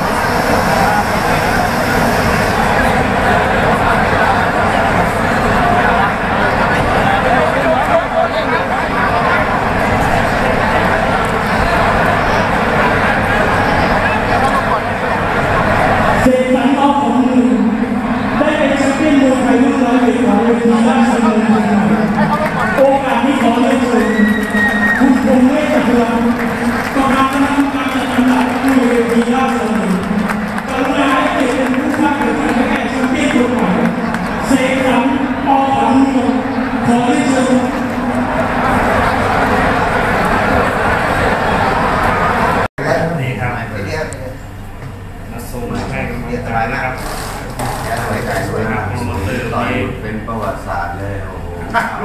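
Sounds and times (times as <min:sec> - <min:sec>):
steady high tone: 0:00.0 - 0:03.8
crowd shouting and talking: 0:00.0 - 0:43.0
steady low hum: 0:00.0 - 0:52.0.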